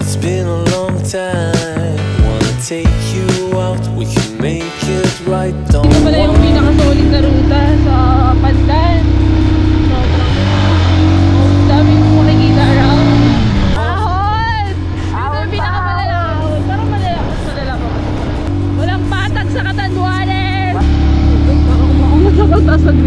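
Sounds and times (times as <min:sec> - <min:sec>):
background music: 0:00.0 - 0:23.0
woman talking: 0:05.8 - 0:09.1, 0:09.8 - 0:18.0, 0:18.8 - 0:23.0
motorcycle engine droning: 0:05.8 - 0:23.0.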